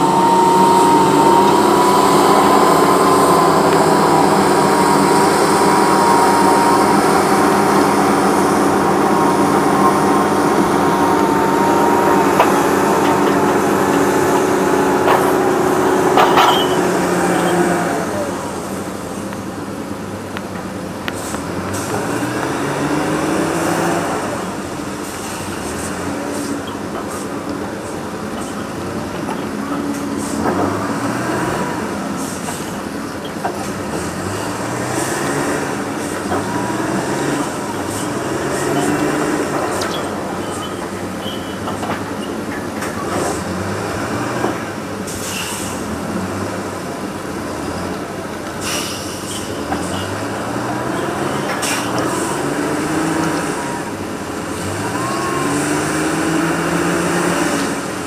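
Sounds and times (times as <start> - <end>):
steady whine: 0.0 - 33.2
heavy diesel machinery running: 0.0 - 58.0.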